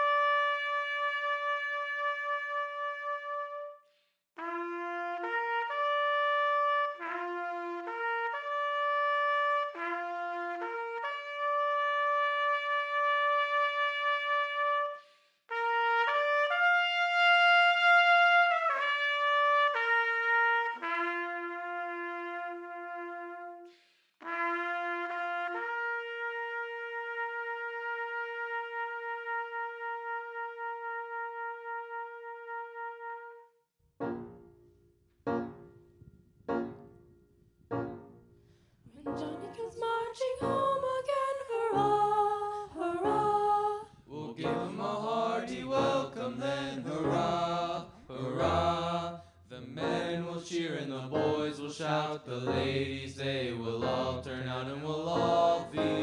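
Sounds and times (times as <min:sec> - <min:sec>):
solo trumpet melody: 0:00.0 - 0:34.5, 0:37.7 - 0:38.2, 0:39.0 - 0:43.6, 0:44.4 - 0:48.8, 0:55.2 - 0:56.0.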